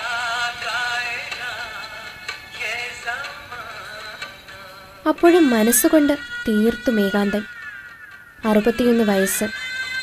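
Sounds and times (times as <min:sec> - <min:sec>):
tinny gramophone singer with vibrato: 0:00.0 - 0:10.0.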